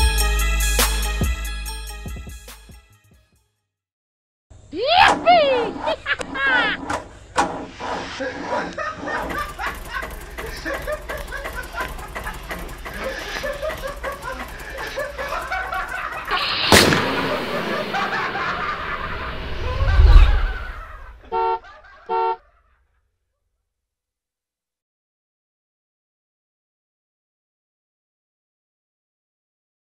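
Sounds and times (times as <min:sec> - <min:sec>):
sharp hit: 0:16.3 - 0:21.3
car horn toots: 0:21.2 - 0:22.4.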